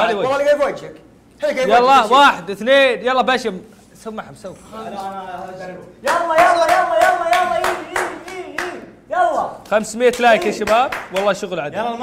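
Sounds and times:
hands clapping in rhythm: 6.0 - 9.0, 9.6 - 11.5.

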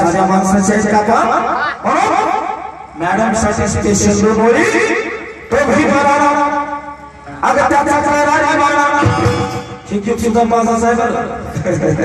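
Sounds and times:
man's voice pulsing over sound system: 0.0 - 12.0.

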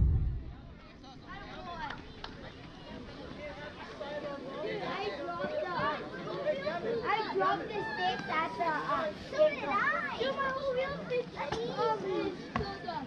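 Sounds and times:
children shouting and chattering: 0.0 - 13.0.

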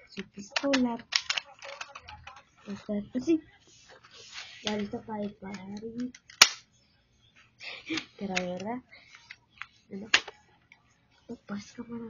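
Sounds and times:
bb pistol snap: 6.2 - 6.7.

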